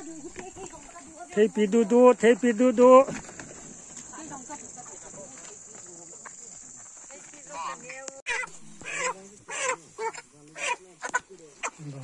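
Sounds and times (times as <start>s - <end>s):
chickens squawking: 7.6s - 11.8s.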